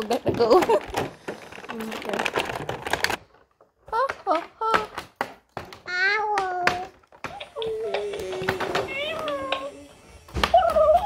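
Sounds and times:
plastic packaging crinkling: 0.0s - 3.7s.

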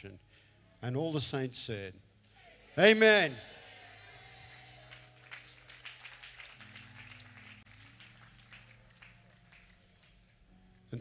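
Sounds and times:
faint scattered clapping: 4.8s - 11.0s.

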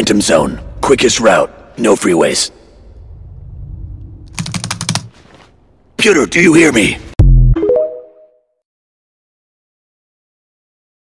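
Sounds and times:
fast typing on keyboard: 4.4s - 5.1s.

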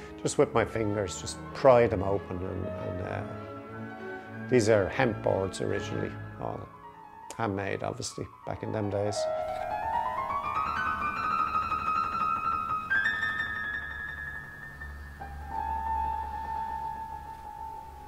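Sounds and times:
piano music: 0.0s - 18.0s.

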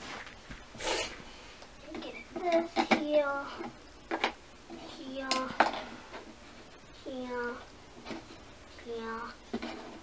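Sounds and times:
girl talking: 1.8s - 3.7s, 4.8s - 5.6s, 7.0s - 7.7s, 8.8s - 9.4s.

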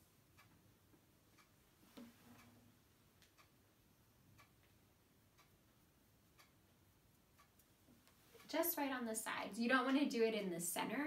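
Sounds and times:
faint regular tick: 0.3s - 2.6s, 3.2s - 3.5s, 5.4s - 5.6s, 6.4s - 10.9s.

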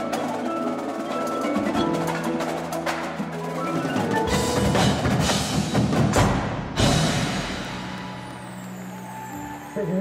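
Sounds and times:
percussion ensemble music: 0.0s - 10.0s.

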